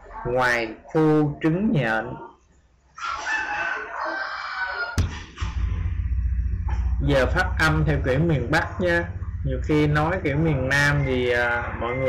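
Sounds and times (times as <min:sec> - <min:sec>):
rooster crowing: 0:03.0 - 0:05.0, 0:10.6 - 0:12.0
steady low hum: 0:05.0 - 0:11.9.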